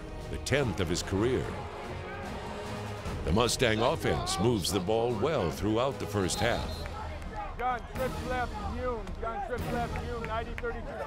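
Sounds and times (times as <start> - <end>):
men talking and calling out: 0.2 - 11.0.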